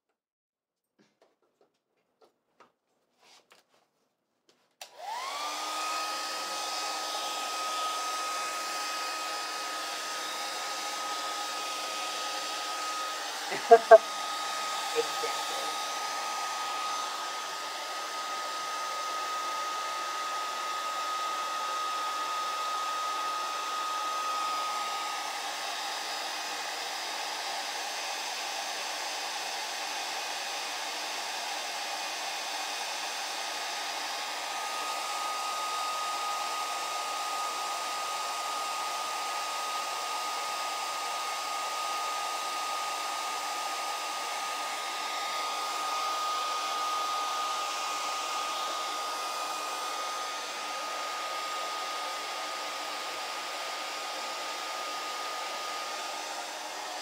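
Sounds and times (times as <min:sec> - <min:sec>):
hair dryer running: 0:04.8 - 0:57.0.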